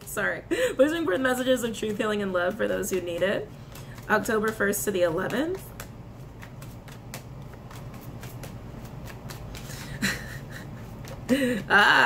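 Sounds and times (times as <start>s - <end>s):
cards being shuffled: 0.9s - 12.0s.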